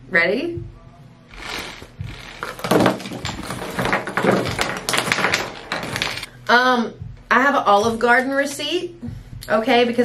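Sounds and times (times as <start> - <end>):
handbag contents clattering onto table: 1.4 - 6.3.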